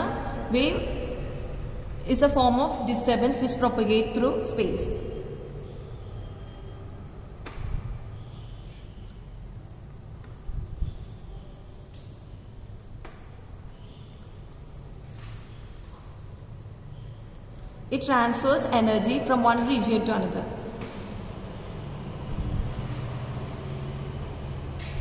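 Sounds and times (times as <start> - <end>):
crickets trilling: 0.0 - 25.0.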